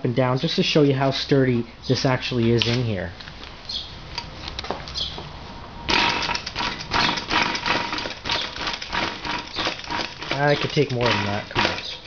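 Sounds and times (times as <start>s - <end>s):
bicycle parts rattling: 5.9s - 12.0s.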